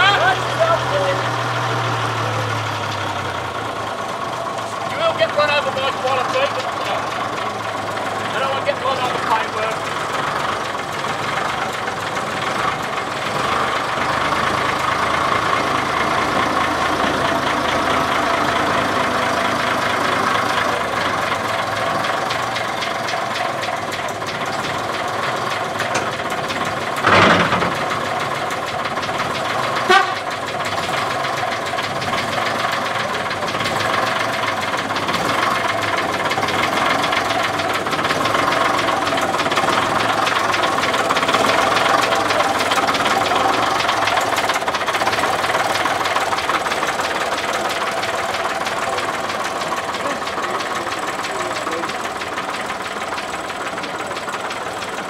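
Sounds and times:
bus engine idling: 0:00.0 - 0:55.0.

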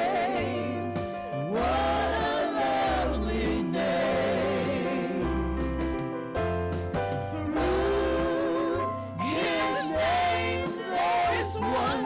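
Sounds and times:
voices singing gospel: 0:00.0 - 0:05.6, 0:07.3 - 0:12.0
band bass notes: 0:00.0 - 0:12.0.

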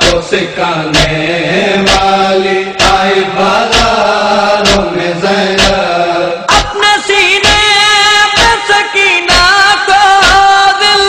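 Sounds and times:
person chanting a lament: 0:00.0 - 0:11.0.

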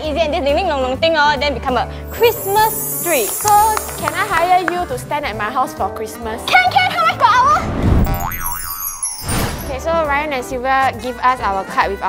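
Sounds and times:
music: 0:00.0 - 0:12.0
twinkly falling sweep: 0:02.1 - 0:05.3, 0:08.1 - 0:09.9
cartoon boing: 0:08.1 - 0:09.2.

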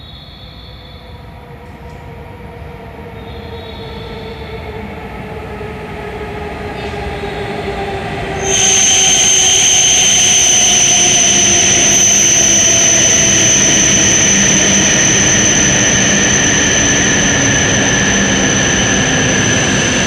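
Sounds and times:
high steady whine: 0:00.0 - 0:20.0
high-speed train arriving: 0:00.0 - 0:20.0.

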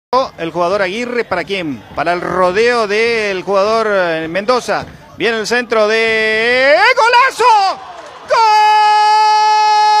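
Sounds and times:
commentator shouting goal: 0:05.5 - 0:10.0.

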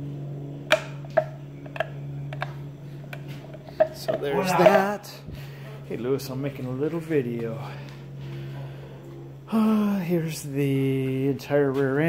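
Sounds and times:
low hum: 0:00.0 - 0:11.6.

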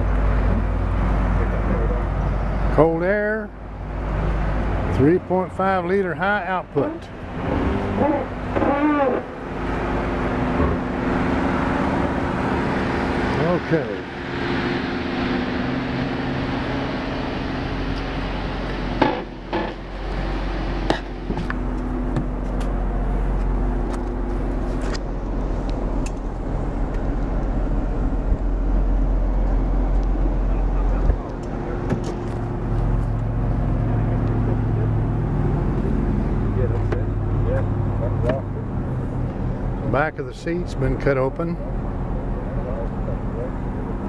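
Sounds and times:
car engine idling: 0:00.0 - 0:44.0.

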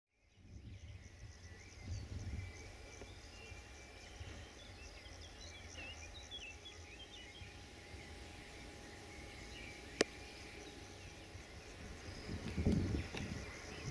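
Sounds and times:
birds chirping: 0:00.2 - 0:13.9
high insect trill: 0:00.4 - 0:13.9.

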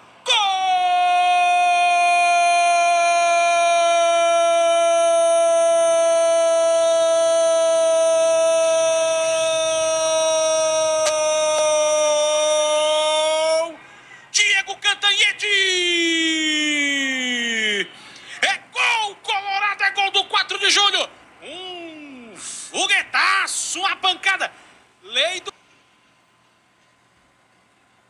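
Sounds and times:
commentator's drawn-out goal cry: 0:00.2 - 0:13.8
man speaking rapidly: 0:11.2 - 0:25.5.

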